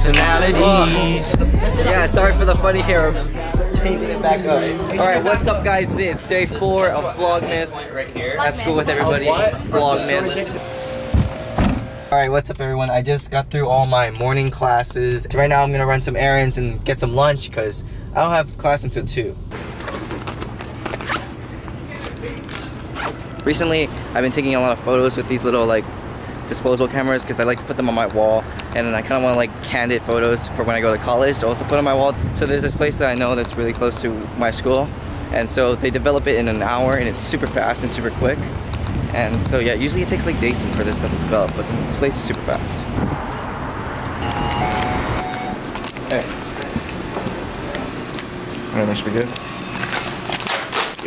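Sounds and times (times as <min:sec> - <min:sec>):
street traffic: 0:00.0 - 0:51.0
two-note electronic tone: 0:10.1 - 0:12.1, 0:44.2 - 0:45.6
backpack zipper pulled open: 0:19.8 - 0:21.4, 0:22.9 - 0:23.3.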